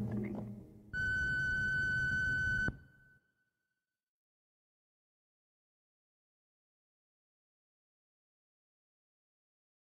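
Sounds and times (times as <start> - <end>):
high electronic beep tone: 1.0 - 3.1.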